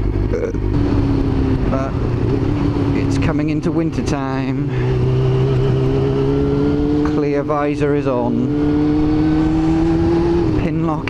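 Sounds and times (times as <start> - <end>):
wind noise: 0.0 - 7.2
motorcycle engine cruising: 0.0 - 11.0.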